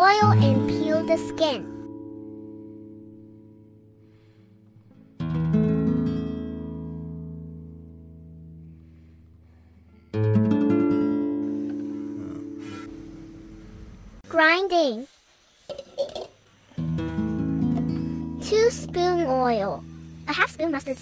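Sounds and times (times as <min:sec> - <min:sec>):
strummed acoustic guitar chords: 0:10.1 - 0:14.2, 0:16.8 - 0:20.3.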